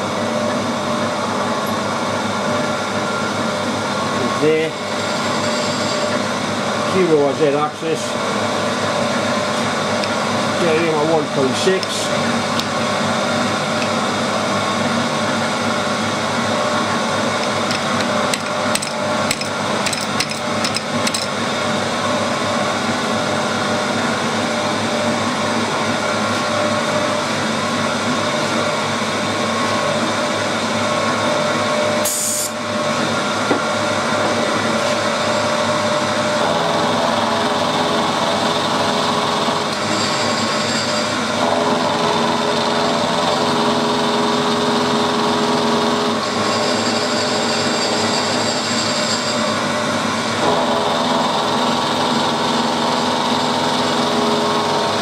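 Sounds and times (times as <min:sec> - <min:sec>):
milling machine cutting metal: 0:04.2 - 0:21.8, 0:30.8 - 0:55.0.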